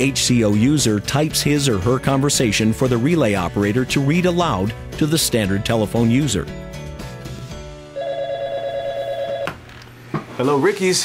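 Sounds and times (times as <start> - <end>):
desk telephone ringing: 8.0 - 9.6.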